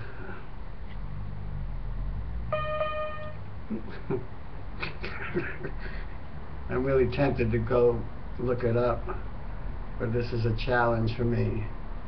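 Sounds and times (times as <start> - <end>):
steady low hum: 0.0 - 12.0
toy keyboard note: 2.5 - 3.4.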